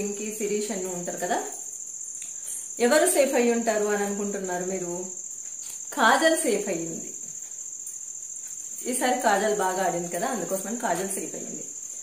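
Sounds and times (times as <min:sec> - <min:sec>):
woman talking: 0:00.0 - 0:01.6, 0:02.8 - 0:05.2, 0:05.9 - 0:07.2, 0:08.8 - 0:11.8.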